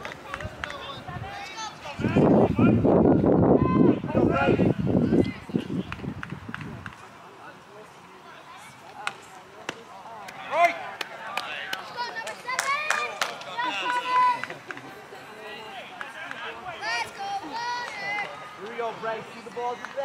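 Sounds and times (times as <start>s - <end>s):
children shouting: 16.8s - 18.6s.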